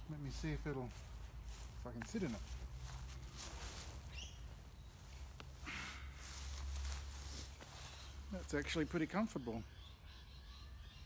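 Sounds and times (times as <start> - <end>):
fabric rustling: 1.0 - 5.4, 6.2 - 8.3.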